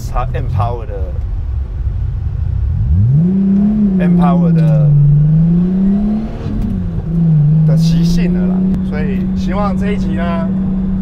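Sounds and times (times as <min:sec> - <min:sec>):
car engine accelerating: 0:00.0 - 0:11.0.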